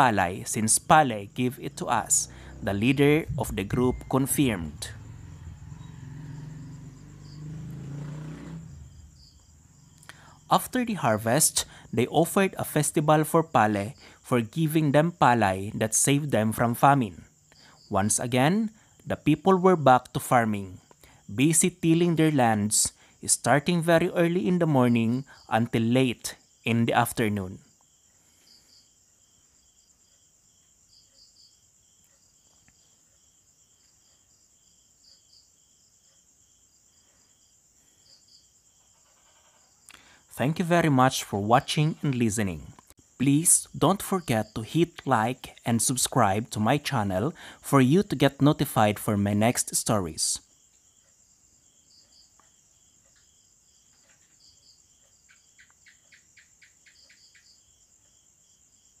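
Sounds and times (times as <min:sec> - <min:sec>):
faint insect chirping: 0:00.0 - 0:59.0.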